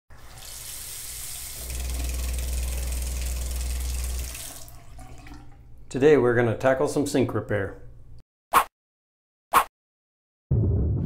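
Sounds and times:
water running from faucet: 0.1s - 5.7s.

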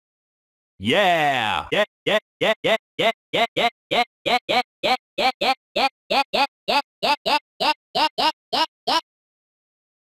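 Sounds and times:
stuttering chopped vocal sample: 0.8s - 9.0s.

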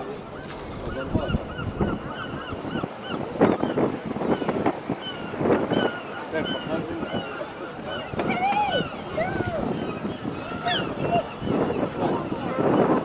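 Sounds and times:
gulls calling: 0.0s - 13.0s
harbour background noise: 0.0s - 13.0s.

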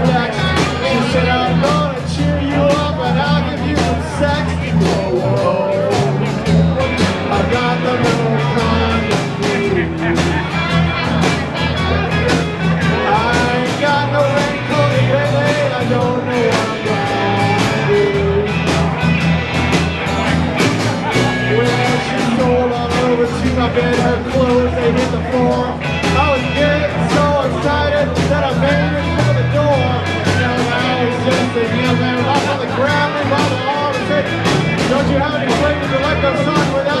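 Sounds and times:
bending lead guitar line: 0.0s - 37.0s
blues band playing: 0.0s - 37.0s.

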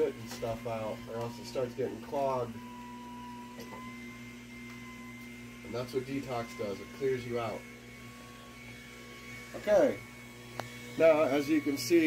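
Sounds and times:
juicer motor humming: 0.0s - 12.0s.

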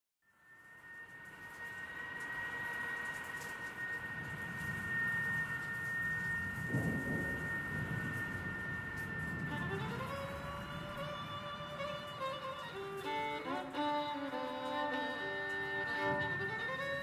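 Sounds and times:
bowed fence wire high tone: 0.2s - 17.0s
low rumbling noise: 0.4s - 17.0s.

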